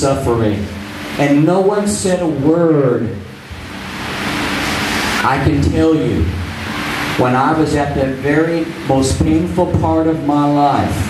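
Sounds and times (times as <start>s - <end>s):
noise hiss: 0.0s - 11.0s.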